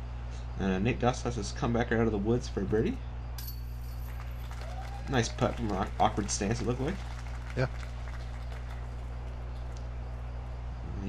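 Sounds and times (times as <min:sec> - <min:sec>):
quiet outdoor ambience: 0:00.0 - 0:11.0
steady low hum: 0:00.0 - 0:11.0.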